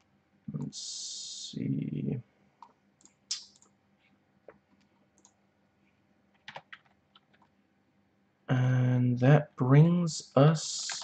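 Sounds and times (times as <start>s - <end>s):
computer keyboard clicks: 4.6s - 5.4s, 6.3s - 7.5s.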